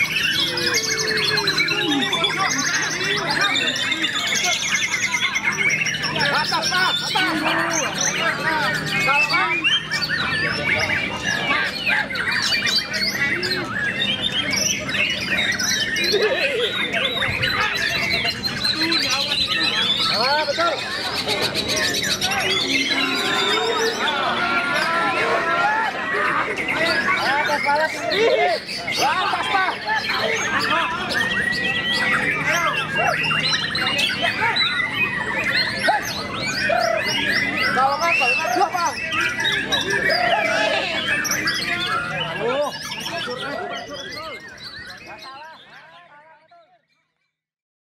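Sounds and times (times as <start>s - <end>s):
bird singing varied song: 0.0s - 47.4s.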